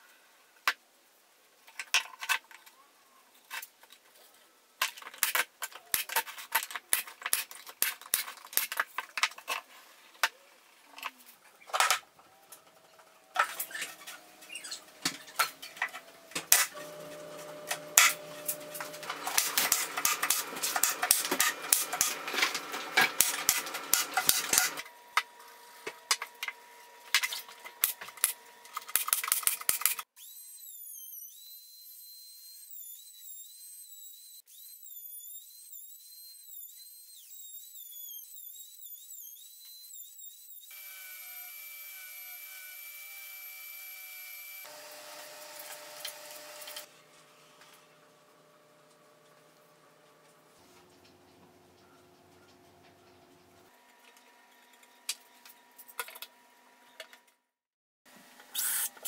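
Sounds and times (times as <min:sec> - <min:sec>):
router high whine: 0:16.7 - 0:19.7, 0:30.3 - 0:46.9.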